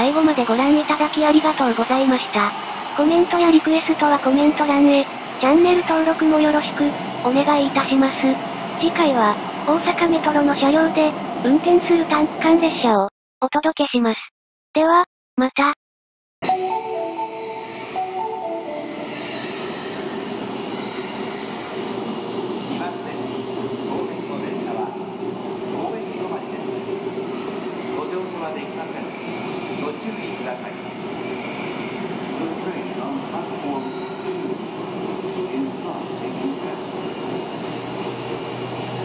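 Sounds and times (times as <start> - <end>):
subway train rolling rumble: 0.0 - 13.0, 16.4 - 39.0
faint high squeal: 31.2 - 32.1.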